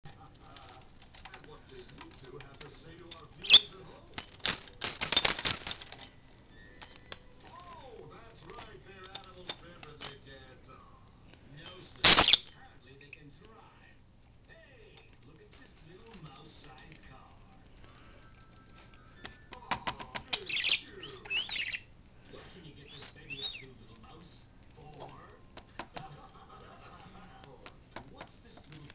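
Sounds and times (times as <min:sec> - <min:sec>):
budgerigars chattering: 0:03.4 - 0:03.7, 0:12.0 - 0:12.4, 0:20.3 - 0:21.9, 0:22.8 - 0:23.8.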